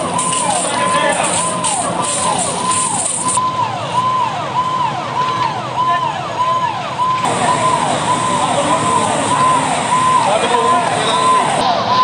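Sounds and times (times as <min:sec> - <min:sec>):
fire engine siren: 0:00.0 - 0:12.0.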